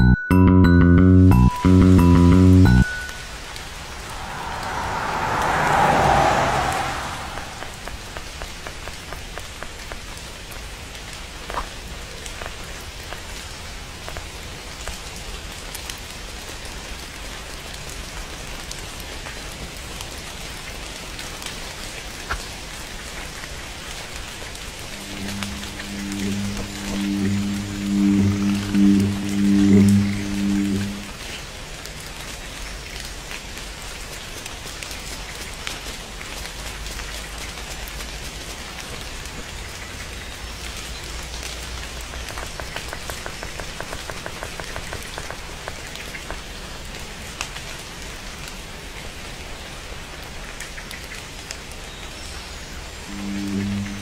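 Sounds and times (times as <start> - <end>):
rain falling: 2.8 - 54.0
low pulsing hum: 24.9 - 31.4, 53.1 - 54.0.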